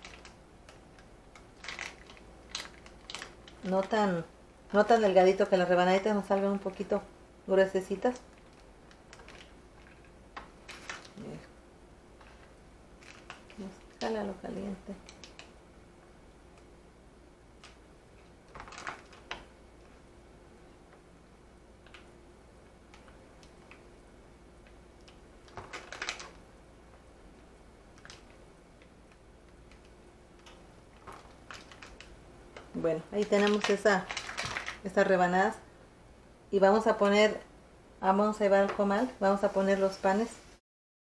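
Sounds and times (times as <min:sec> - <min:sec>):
faint steady hum: 0:00.0 - 0:40.6.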